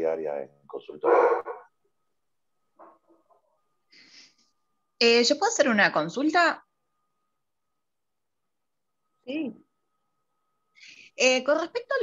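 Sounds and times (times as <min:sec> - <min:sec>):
dog barking: 0:01.0 - 0:01.7.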